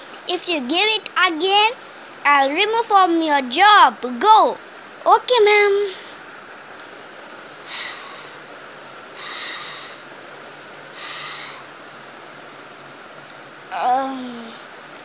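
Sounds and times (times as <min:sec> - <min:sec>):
person breathing softly: 0:07.7 - 0:08.5, 0:09.2 - 0:10.1, 0:11.0 - 0:11.6.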